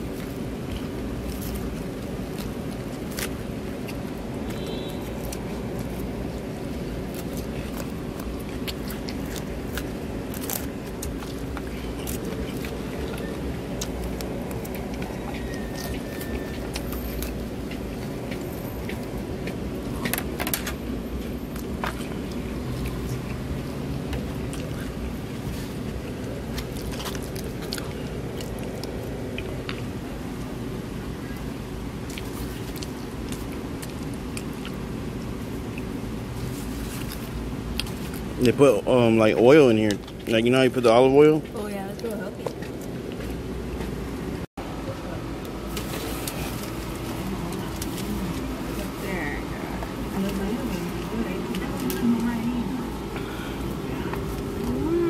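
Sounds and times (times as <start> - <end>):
crunchy chewing: 0.0 - 44.3, 45.4 - 55.0.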